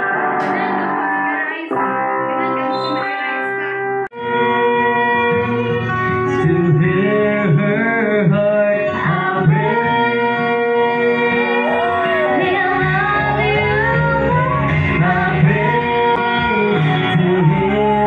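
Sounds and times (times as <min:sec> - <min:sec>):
song with guitar and singing: 0:00.0 - 0:18.0.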